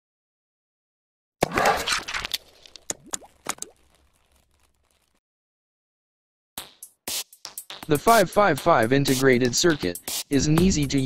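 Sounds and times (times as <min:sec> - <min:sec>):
sharp pops with upward pitch glides: 0:02.3 - 0:04.7.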